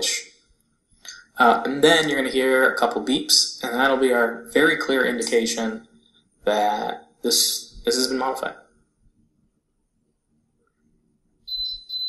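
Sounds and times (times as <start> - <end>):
pressure cooker beeping: 11.5 - 12.0.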